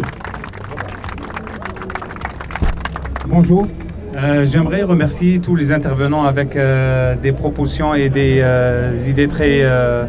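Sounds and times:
crowd applauding: 0.0 - 4.6
low bump on microphone: 2.6 - 3.0.

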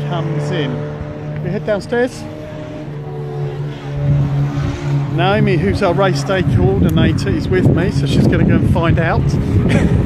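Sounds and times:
engine-like drone: 0.0 - 10.0.

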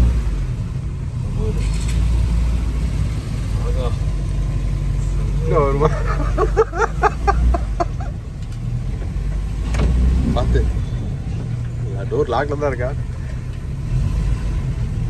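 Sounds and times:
car engine low rumble: 0.0 - 15.0.

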